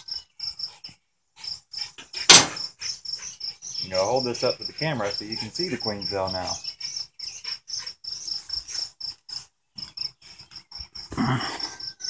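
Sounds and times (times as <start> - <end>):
cricket chirping: 0.0 - 12.0.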